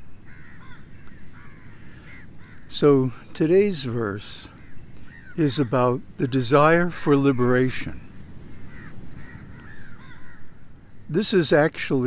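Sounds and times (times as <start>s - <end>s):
crows cawing: 0.2s - 3.2s, 4.5s - 6.0s, 8.3s - 11.1s.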